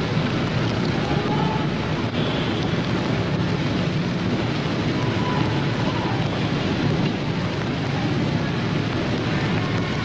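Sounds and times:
low rumbling noise: 0.0s - 10.0s.

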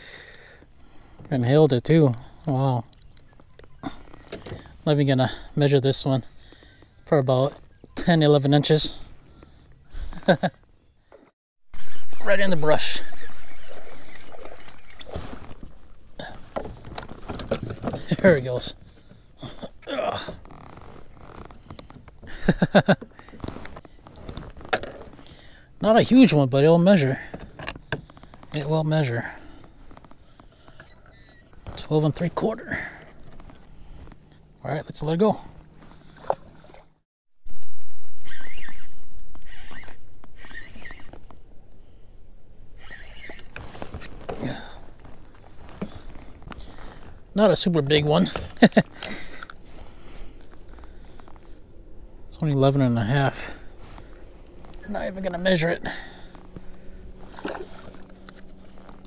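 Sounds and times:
man laughing: 9.9s - 10.6s, 22.2s - 23.2s, 48.2s - 49.4s
water splashing: 12.8s - 16.5s, 36.0s - 37.0s, 54.0s - 58.8s.

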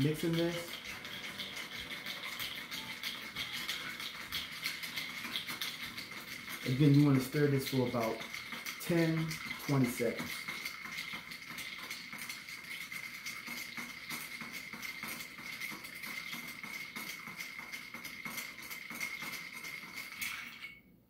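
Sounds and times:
ice rattling against glass: 0.0s - 20.8s.

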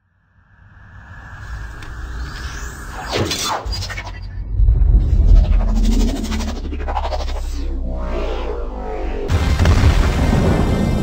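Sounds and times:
falling sweeps: 1.2s - 9.4s.

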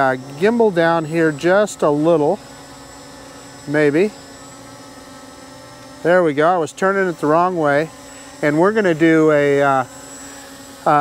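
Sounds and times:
quadcopter drone buzzing: 0.0s - 11.0s.

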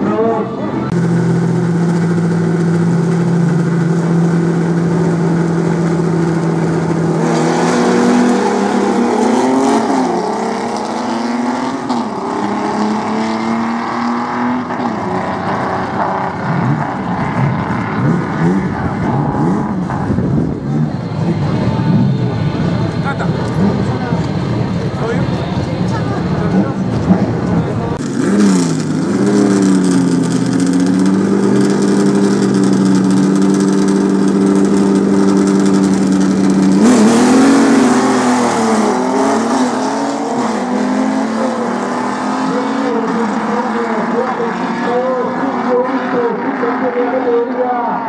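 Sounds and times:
drag racing car engines revving: 0.0s - 48.0s.

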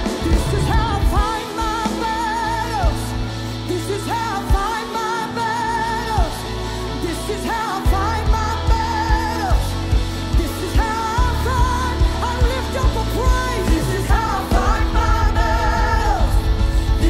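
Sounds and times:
bass: 0.0s - 17.0s
drums: 0.0s - 17.0s
electric guitar: 0.0s - 17.0s
woman singing with vibrato: 0.0s - 17.0s.

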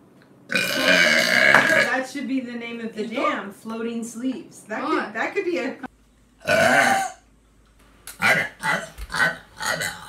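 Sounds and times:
person burping: 0.5s - 1.9s, 6.4s - 7.2s, 8.1s - 10.0s.

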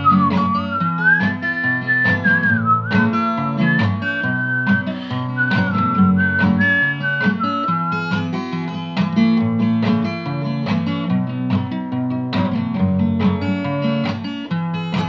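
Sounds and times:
man whistling a melody: 0.0s - 8.4s
strummed acoustic guitar: 0.0s - 15.0s.

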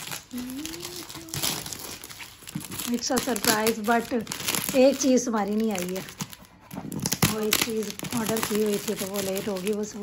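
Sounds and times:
wrapping paper crinkling: 0.0s - 10.0s
person humming: 0.2s - 1.8s.

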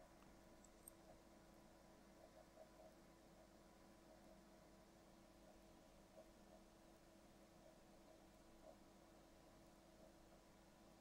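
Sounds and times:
faint electrical hum and hiss: 0.0s - 11.0s.

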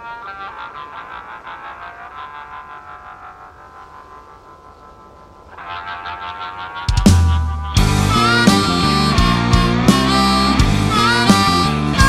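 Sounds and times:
harmonica with vibrato: 0.0s - 12.0s.

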